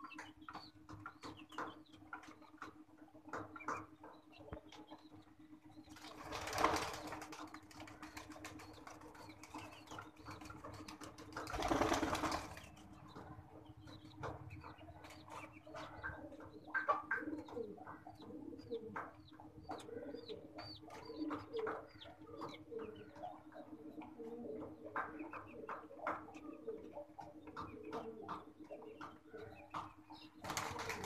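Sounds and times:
pigeons cooing: 0:05.9 - 0:31.0.

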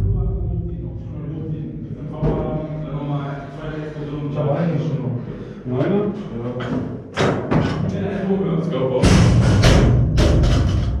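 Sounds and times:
people chanting: 0:00.0 - 0:05.5
loud music: 0:09.0 - 0:11.0.

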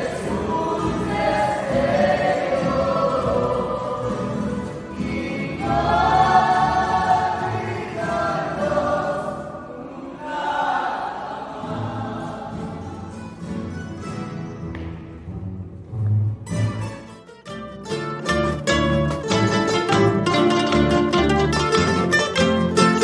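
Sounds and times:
double bass: 0:00.0 - 0:09.6, 0:11.8 - 0:23.0
strummed guitars: 0:00.0 - 0:09.6, 0:11.5 - 0:23.0
chorus singing: 0:00.0 - 0:13.6.

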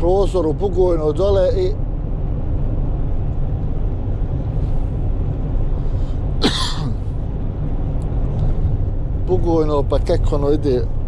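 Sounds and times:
van engine and road rumble: 0:00.0 - 0:11.0
engine cough-like burst: 0:06.4 - 0:07.2.

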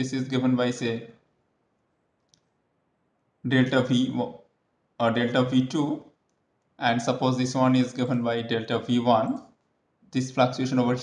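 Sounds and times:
faint click: 0:01.8 - 0:02.6.

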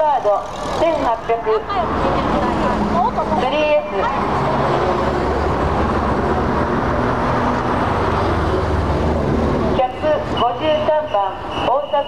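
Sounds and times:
car engines driving past: 0:00.0 - 0:12.0.

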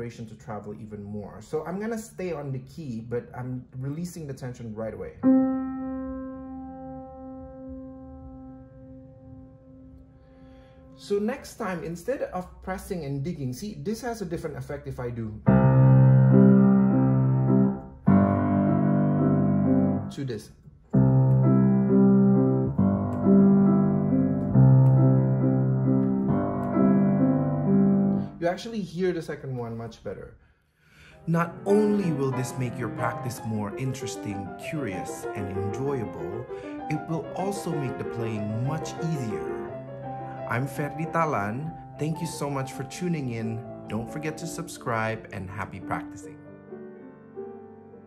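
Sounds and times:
grand piano note ringing: 0:05.2 - 0:11.3, 0:31.2 - 0:47.1.

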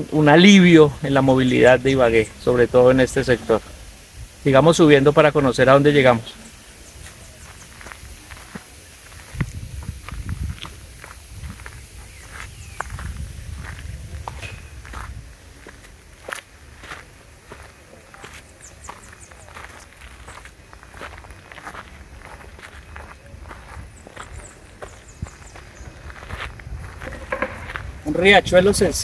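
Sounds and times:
footsteps on grassy dirt path: 0:05.7 - 0:28.4.

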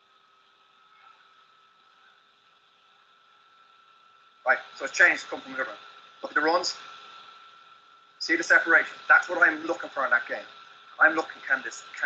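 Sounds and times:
faint steady hiss: 0:00.0 - 0:12.0
thin steady tone: 0:00.0 - 0:12.0.

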